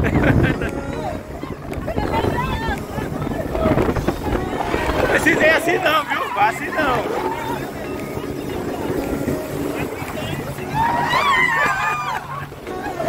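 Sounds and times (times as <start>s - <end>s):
boat engine low rumble: 0.0s - 13.0s
passengers talking and laughing: 0.0s - 13.0s
wind rushing over microphone: 0.0s - 13.0s.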